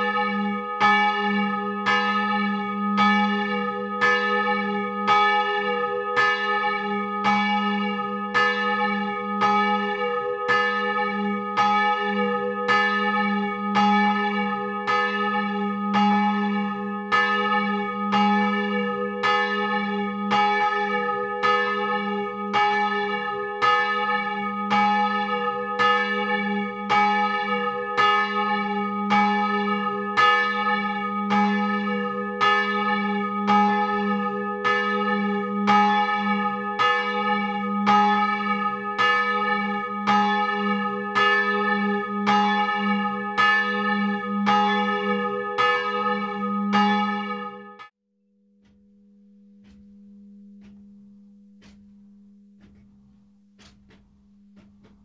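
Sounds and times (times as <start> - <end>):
church bell ringing: 0.0 - 47.9, 48.5 - 55.0.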